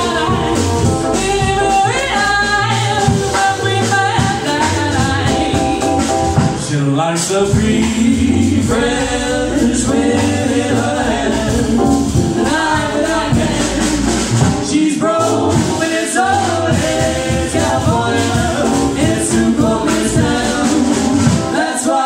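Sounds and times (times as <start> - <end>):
woman singing: 0.0 - 6.0
drum kit: 0.0 - 22.0
keyboard: 0.0 - 22.0.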